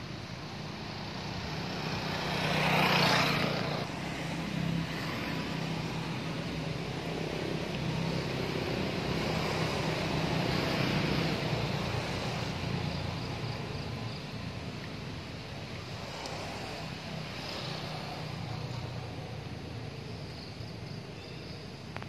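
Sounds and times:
vehicle engine humming: 0.0s - 22.0s.

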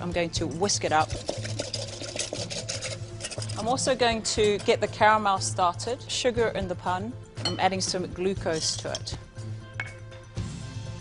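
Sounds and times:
whisk ticking against bowl: 0.4s - 3.7s.

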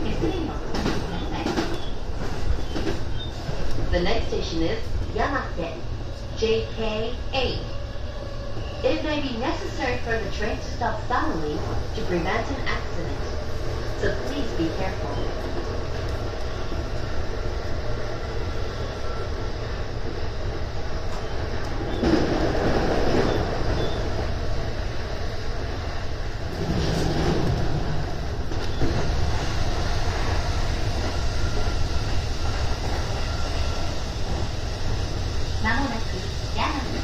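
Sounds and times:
train wheels rumbling on rail: 0.0s - 37.0s.

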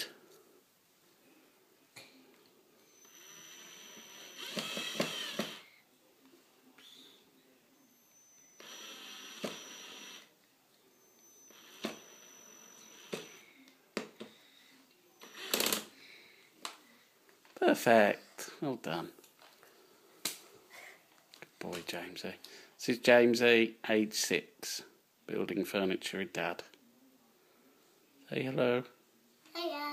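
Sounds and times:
cordless drill whining: 2.8s - 5.8s, 7.8s - 10.3s, 11.0s - 13.6s, 15.2s - 15.9s.

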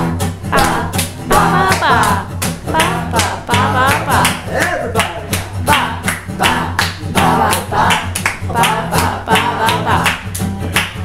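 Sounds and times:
acoustic guitar strumming: 0.0s - 11.0s
man singing: 0.4s - 10.8s
hand claps: 0.5s - 11.0s.

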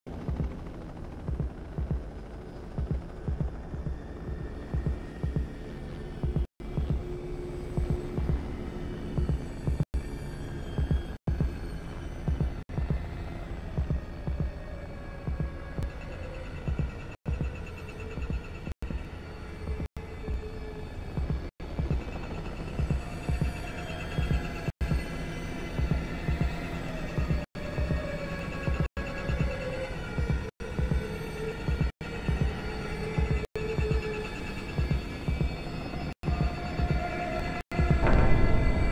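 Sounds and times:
heartbeat thumps: 0.1s - 8.5s, 9.2s - 9.9s, 10.8s - 11.6s, 12.2s - 13.1s, 13.7s - 14.6s, 15.3s - 16.0s, 16.7s - 19.1s, 21.2s - 22.1s, 22.8s - 25.1s, 25.8s - 26.6s, 27.2s - 28.1s, 28.7s - 29.6s, 30.2s - 31.1s, 31.7s - 32.6s, 33.2s - 34.1s, 34.8s - 35.6s, 36.2s - 37.0s.

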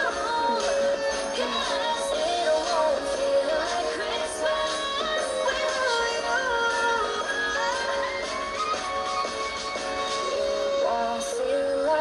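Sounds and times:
instrumental backing music: 0.0s - 12.0s
women singing pop song: 0.0s - 12.0s.

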